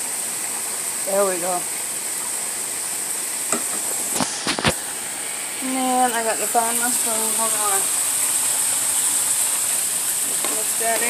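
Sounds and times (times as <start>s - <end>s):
water boiling and bubbling: 0.0s - 11.0s.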